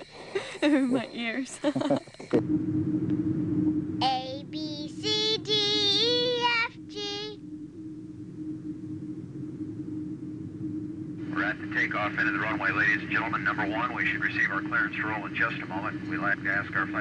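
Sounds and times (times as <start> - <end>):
steady hum: 0.0 - 17.0
high voice singing: 4.0 - 7.4.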